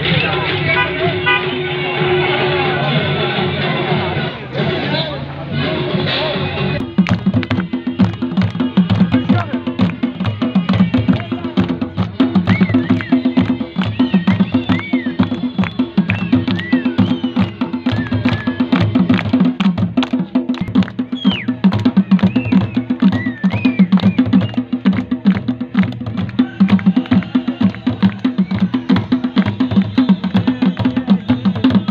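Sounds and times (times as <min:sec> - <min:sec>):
barrel drum played fast: 0:06.8 - 0:31.9
high whistles: 0:12.4 - 0:18.8, 0:20.6 - 0:21.6, 0:22.2 - 0:24.7.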